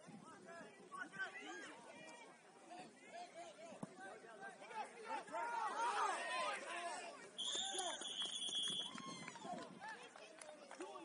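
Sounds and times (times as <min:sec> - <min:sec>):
voices from crowd: 0:00.0 - 0:11.0
referee's whistle blast: 0:07.4 - 0:08.9.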